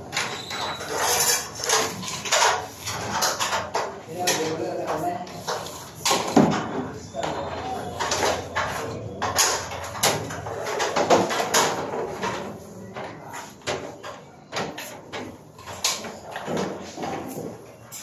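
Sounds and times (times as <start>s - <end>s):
wires rustling and scraping: 0.0s - 18.0s.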